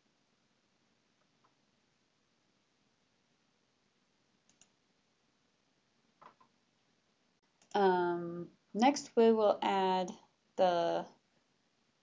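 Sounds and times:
faint computer mouse clicks: 4.5s - 4.8s.

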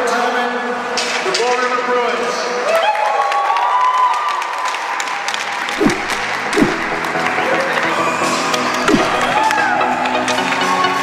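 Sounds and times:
crowd applauding: 2.8s - 11.0s
background music: 5.8s - 11.0s.

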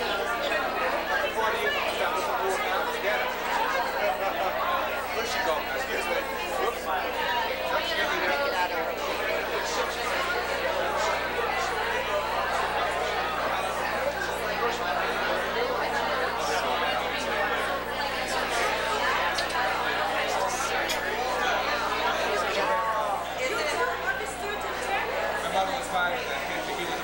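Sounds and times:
crowd babble of conversations: 0.0s - 27.0s.

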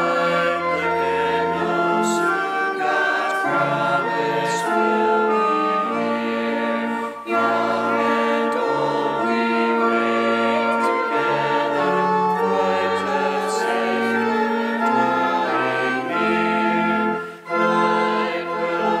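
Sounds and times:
organ chords: 0.0s - 19.0s
voices singing a hymn: 0.0s - 19.0s.

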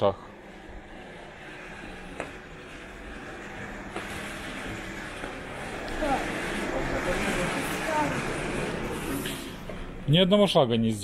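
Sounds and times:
shop background hum: 0.0s - 11.0s
faint voices: 4.6s - 9.6s.

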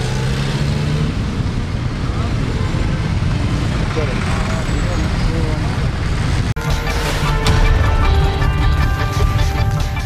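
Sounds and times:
traffic rumble: 0.0s - 10.0s.

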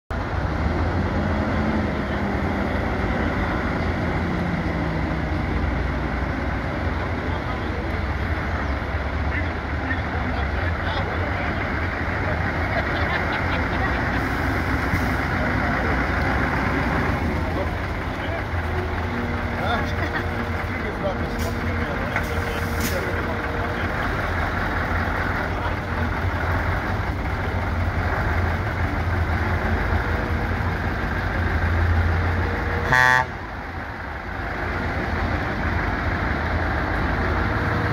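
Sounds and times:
truck diesel engine rumbling: 0.1s - 37.9s.

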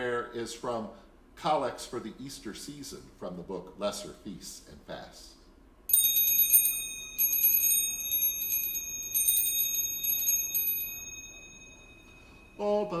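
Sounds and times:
small hand bell ringing: 5.9s - 13.0s.

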